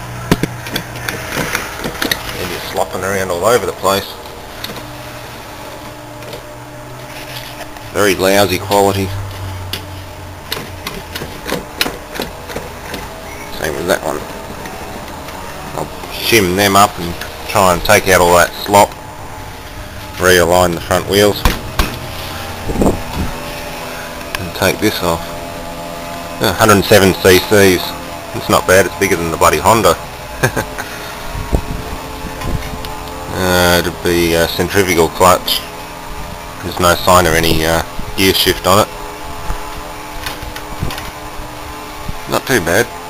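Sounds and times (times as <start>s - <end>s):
machine hum: 0.0s - 43.0s.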